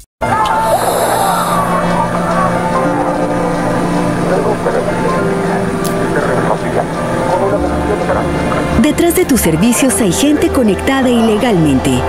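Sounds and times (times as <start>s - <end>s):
drone of low tones: 0.2s - 12.0s.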